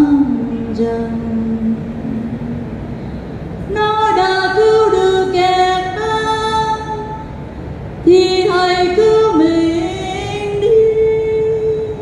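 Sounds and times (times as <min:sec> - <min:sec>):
woman chanting: 0:00.0 - 0:02.7, 0:03.7 - 0:07.2, 0:08.1 - 0:12.0.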